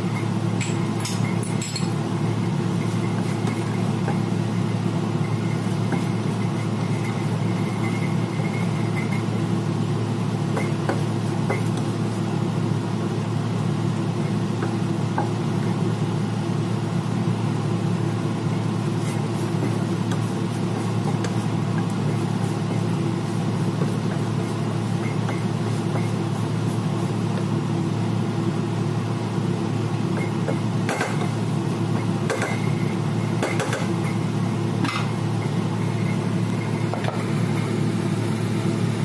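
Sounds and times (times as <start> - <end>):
low mechanical hum: 0.0 - 39.0.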